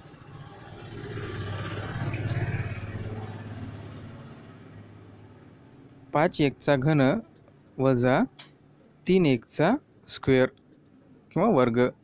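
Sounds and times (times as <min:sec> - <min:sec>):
vehicle engine passing by: 0:00.0 - 0:06.1.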